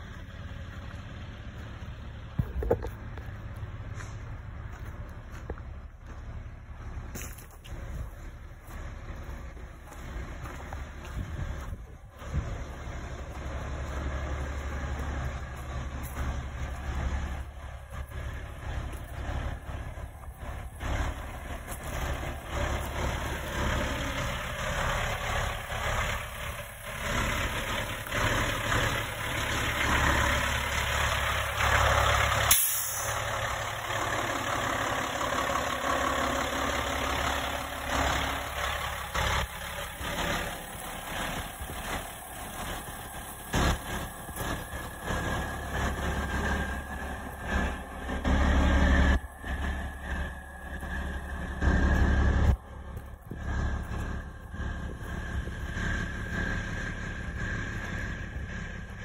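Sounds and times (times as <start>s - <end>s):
diesel truck engine idling: 0.0s - 59.0s.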